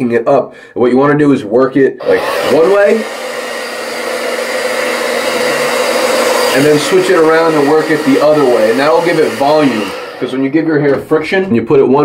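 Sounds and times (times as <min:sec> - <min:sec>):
blow dryer running: 0:02.0 - 0:10.7.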